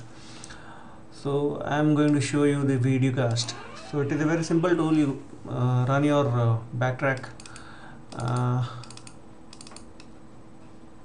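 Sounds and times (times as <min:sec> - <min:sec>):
faint steady hum: 0:00.0 - 0:11.0
computer keyboard clicks: 0:07.2 - 0:10.1.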